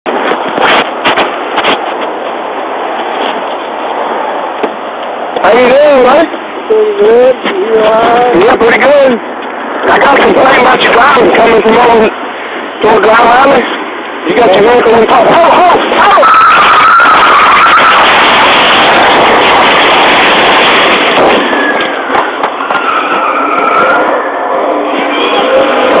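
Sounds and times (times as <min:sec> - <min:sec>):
microphone handling crackle: 0:00.1 - 0:03.7
radio open-channel hiss: 0:00.1 - 0:22.8
tyre squeal: 0:22.6 - 0:26.0.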